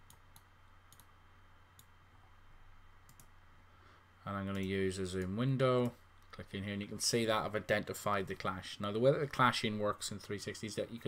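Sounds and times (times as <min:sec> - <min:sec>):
computer mouse clicks: 0:00.0 - 0:01.1, 0:03.1 - 0:03.4
steady low hum: 0:00.0 - 0:11.0.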